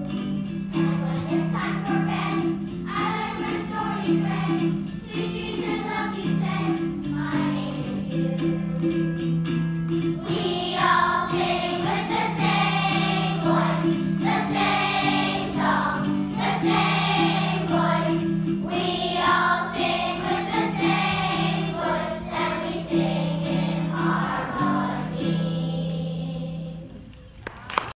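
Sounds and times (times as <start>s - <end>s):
children's choir singing: 0.0s - 9.3s, 10.0s - 27.1s.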